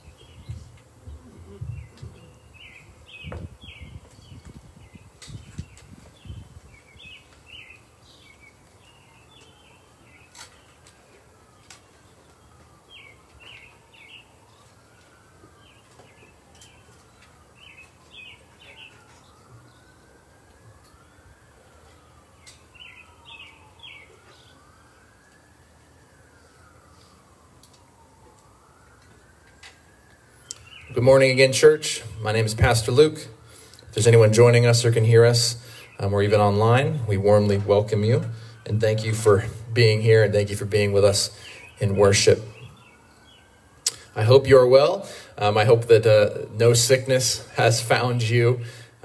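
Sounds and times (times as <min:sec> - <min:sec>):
birds chirping: 0:00.0 - 0:25.4, 0:29.5 - 0:49.0
faint emergency siren wailing: 0:00.0 - 0:49.0.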